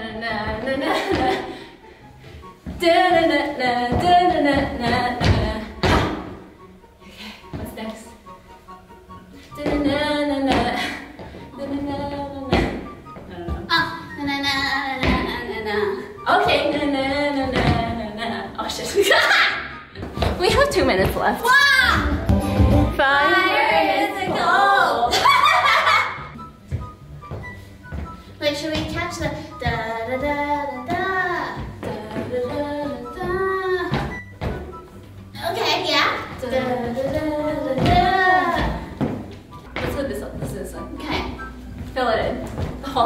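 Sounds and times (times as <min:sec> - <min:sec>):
faint background notes: 0:00.0 - 0:43.0
song playing quietly: 0:00.0 - 0:43.0
woman singing: 0:02.7 - 0:06.0, 0:09.6 - 0:18.6, 0:28.6 - 0:34.2, 0:36.3 - 0:39.0
woman scat singing: 0:36.4 - 0:39.0.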